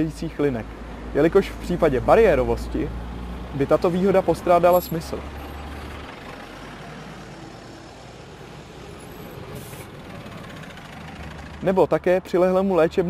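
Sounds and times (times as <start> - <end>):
bus engine rumble: 0.0 - 13.0
traffic noise: 0.0 - 13.0
air brake hiss: 9.4 - 9.9.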